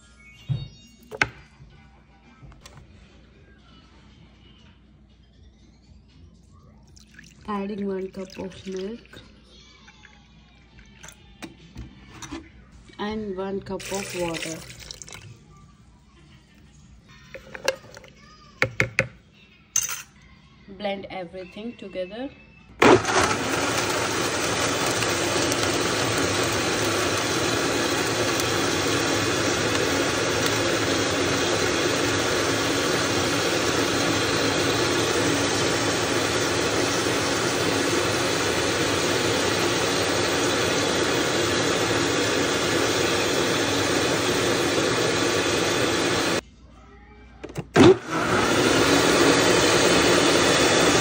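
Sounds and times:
blender motor running: 22.8s - 46.4s, 47.8s - 51.0s.

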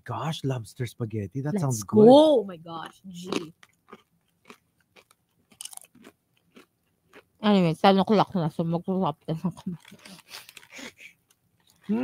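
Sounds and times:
person chewing crisp chips: 2.8s - 7.3s, 9.8s - 11.0s.

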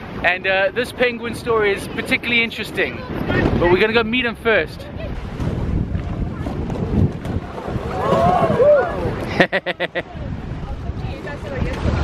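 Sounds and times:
sea surf washing on shore: 0.0s - 12.0s
wind buffeting microphone: 0.0s - 12.0s.

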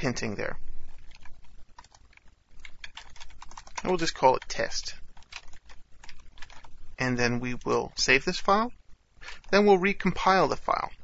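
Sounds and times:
faint low hum: 0.0s - 11.0s
keyboard keystrokes: 1.0s - 4.6s.

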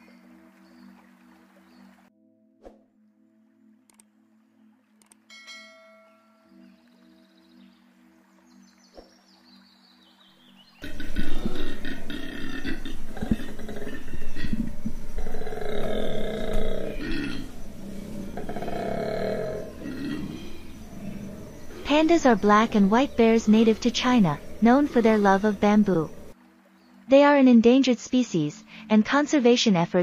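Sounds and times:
faint musical tones: 0.0s - 30.0s
koala bellowing: 10.8s - 26.4s.

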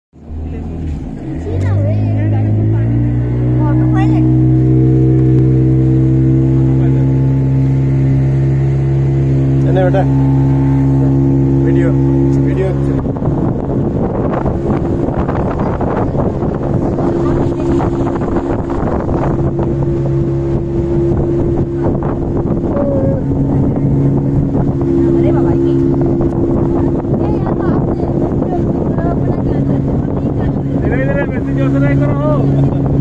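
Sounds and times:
speedboat engine running: 0.2s - 33.0s
wind and water rushing: 0.2s - 33.0s.

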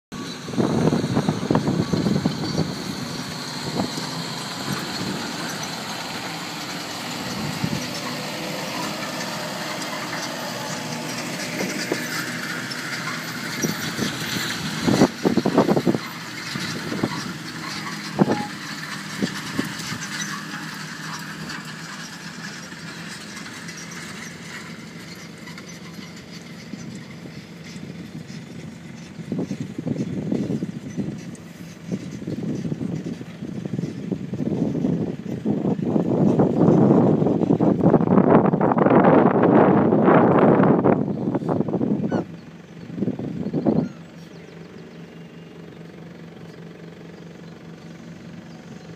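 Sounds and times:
tractor diesel engine under load: 0.1s - 48.9s.

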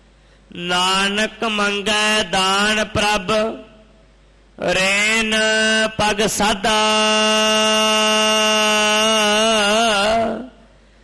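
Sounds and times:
man chanting a long note: 4.6s - 10.7s.

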